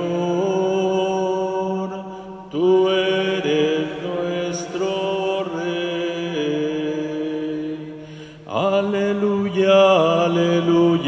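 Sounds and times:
person singing psalm: 0.0s - 11.0s.

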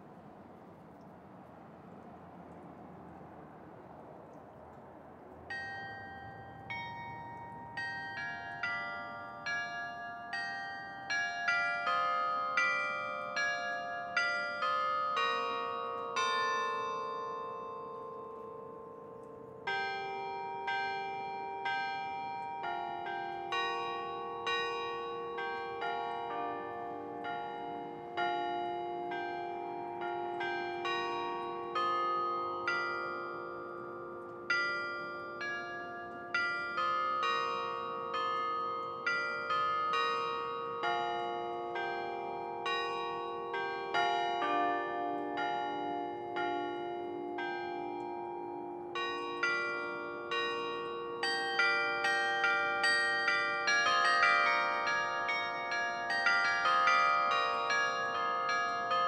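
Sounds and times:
carillon bells playing melody: 5.5s - 59.0s.

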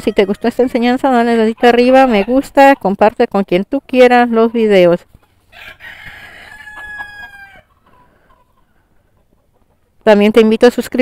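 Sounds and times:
rooster crowing: 5.5s - 8.0s.

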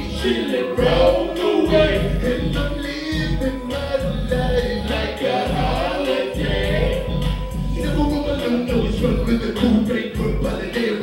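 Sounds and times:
hip-hop beat with heavy bass: 0.0s - 11.0s
person singing: 0.0s - 11.0s.

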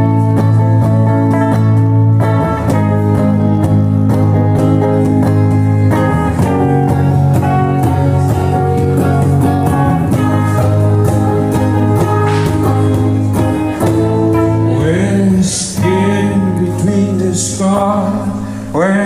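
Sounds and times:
electric guitars: 0.0s - 19.0s
low bass line: 0.0s - 19.0s.

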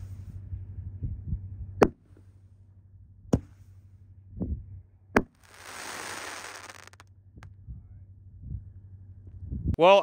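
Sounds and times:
firework crack: 5.2s - 7.0s
firework burst hiss: 5.3s - 7.0s.

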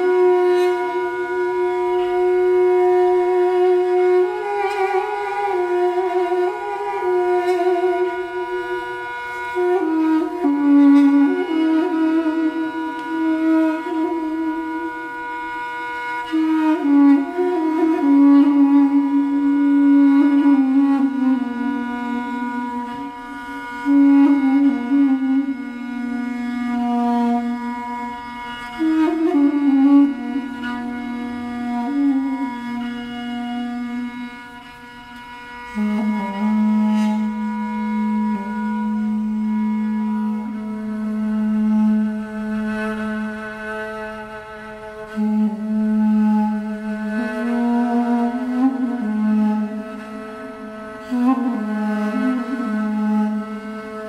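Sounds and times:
bowed string notes: 0.0s - 54.0s
reedy woodwind melody: 0.0s - 54.0s.

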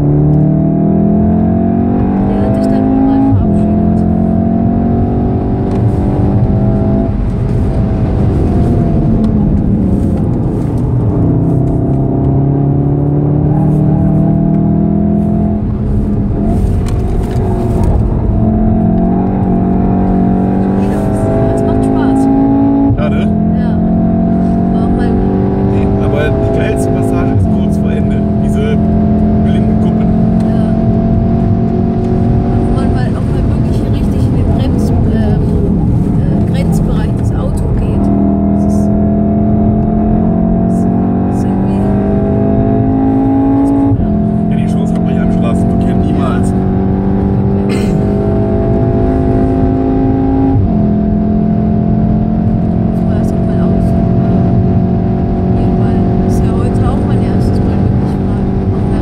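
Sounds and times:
car engine accelerating: 0.0s - 59.0s
tyre and road noise: 0.0s - 59.0s.

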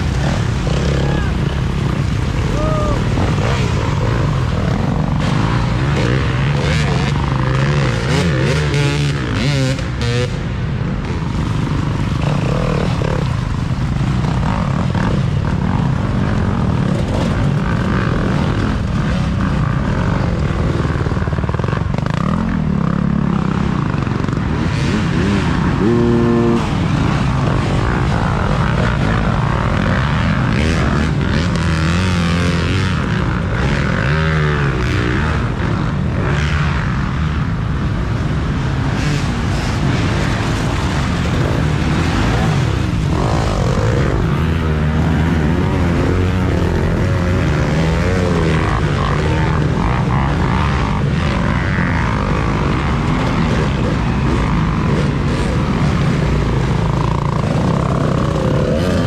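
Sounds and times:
dirt bike engines passing: 0.0s - 59.0s.

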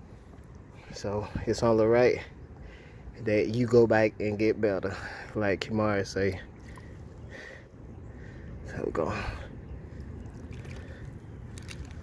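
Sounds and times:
water lapping and sloshing: 6.3s - 12.0s.

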